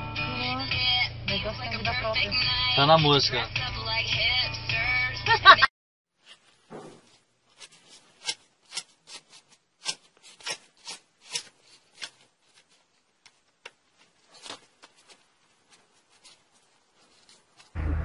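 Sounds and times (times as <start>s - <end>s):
car stereo music: 0.0s - 5.7s.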